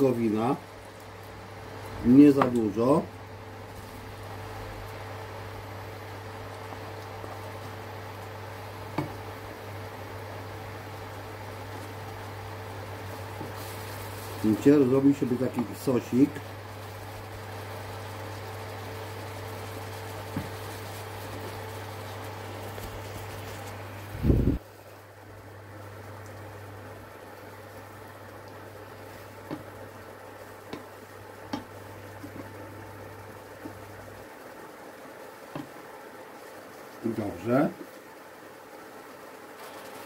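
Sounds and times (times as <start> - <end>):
low hum from cooktop: 0.0 - 40.0
sauce simmering in a frying pan: 0.0 - 40.0.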